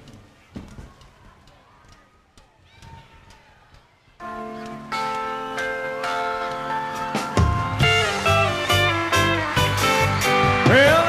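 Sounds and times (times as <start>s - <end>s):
faint clicks: 0.0s - 4.0s
band playing sustained chords: 4.2s - 11.0s.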